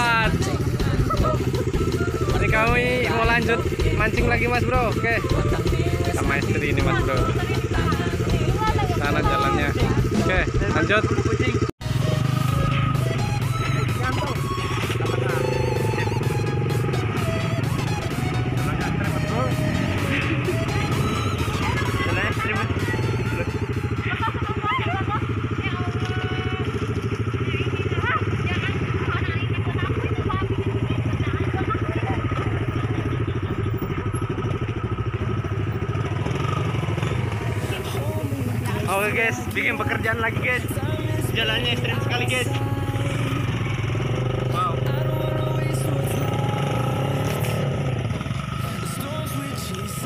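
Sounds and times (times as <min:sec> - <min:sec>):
background music with singing: 0:00.0 - 0:10.6, 0:37.3 - 0:50.0
small motorcycle engines: 0:00.0 - 0:50.0.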